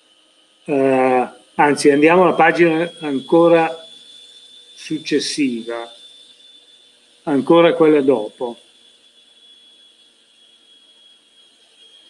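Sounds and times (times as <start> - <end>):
thin high-pitched whine: 0.0 - 12.0.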